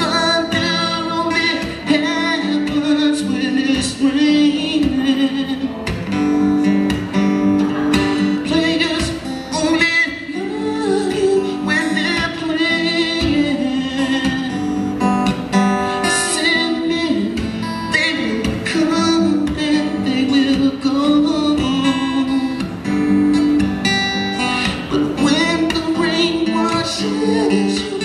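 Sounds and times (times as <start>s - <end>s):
man singing into microphone: 0.0s - 6.1s, 7.7s - 15.0s, 15.9s - 22.8s, 24.4s - 28.0s
acoustic guitar chords: 0.0s - 28.0s.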